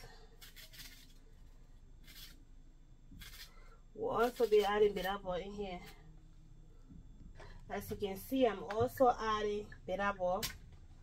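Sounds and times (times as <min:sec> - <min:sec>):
knife slicing onion: 0:00.0 - 0:02.4, 0:03.2 - 0:06.0.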